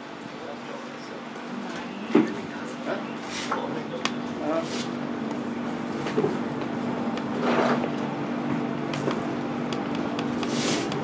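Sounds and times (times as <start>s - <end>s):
steady low hum: 0.0s - 11.0s
distant indistinct voices: 0.1s - 5.8s.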